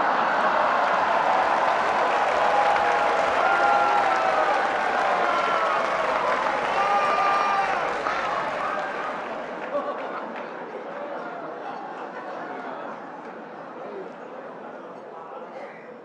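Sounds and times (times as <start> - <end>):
audience applauding: 0.0 - 11.2.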